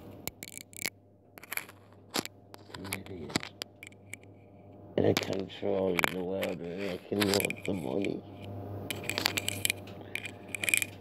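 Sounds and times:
low steady hum: 0.0 - 11.0
scraping rustle: 5.1 - 11.0.

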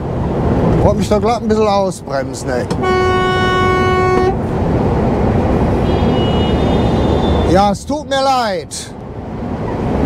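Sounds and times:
engine and road drone: 0.0 - 10.0
truck horn blast: 2.8 - 4.5, 5.8 - 7.5.

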